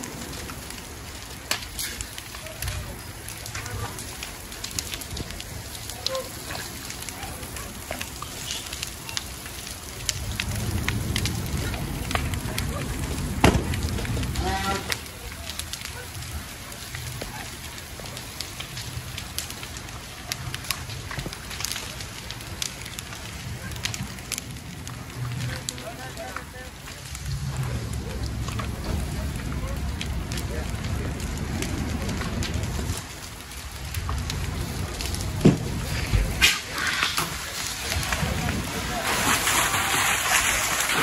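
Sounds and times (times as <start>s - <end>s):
fire crackling and popping: 0.0s - 41.0s
low fire rumble: 0.0s - 41.0s.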